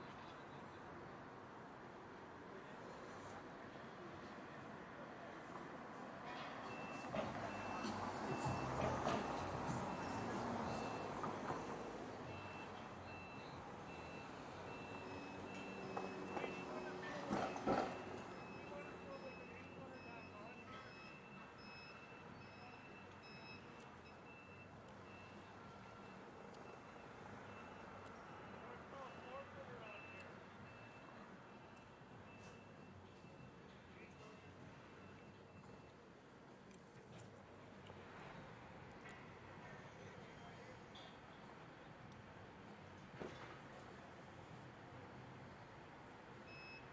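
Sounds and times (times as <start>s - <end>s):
low street noise: 0.0s - 46.9s
forklift backup alarm beeping: 6.6s - 11.2s, 12.2s - 36.0s, 46.4s - 46.9s.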